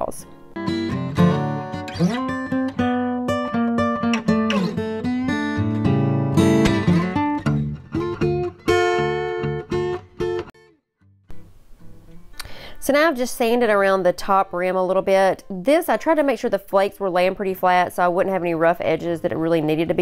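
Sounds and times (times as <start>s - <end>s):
acoustic guitar music: 0.0s - 20.0s.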